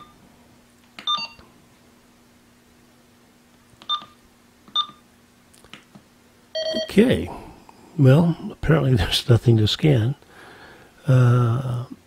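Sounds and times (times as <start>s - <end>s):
faint steady hum: 0.0s - 12.0s
scanner keypad beeps: 1.0s - 1.4s, 3.8s - 5.0s, 6.6s - 6.9s.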